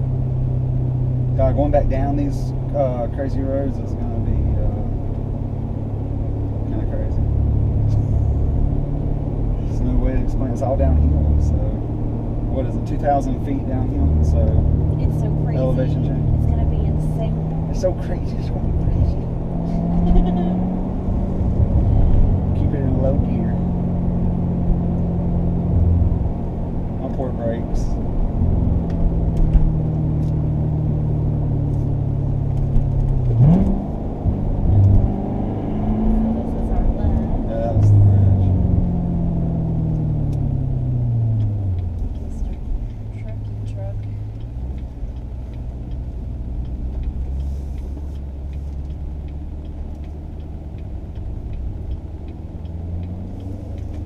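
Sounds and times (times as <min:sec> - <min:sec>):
car engine running: 0:00.0 - 0:54.0.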